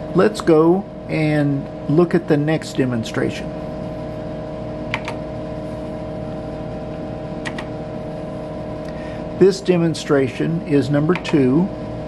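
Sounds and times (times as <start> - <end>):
computer electrical hum: 0.0 - 12.0
keyboard key clicks: 4.9 - 5.2, 7.4 - 7.7.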